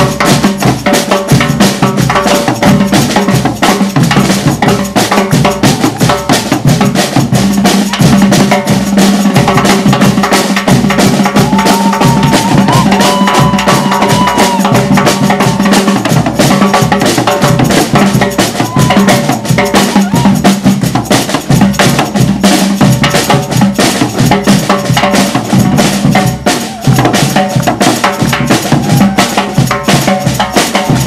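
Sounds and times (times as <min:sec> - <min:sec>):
metal-shelled drums struck: 0:00.0 - 0:31.0.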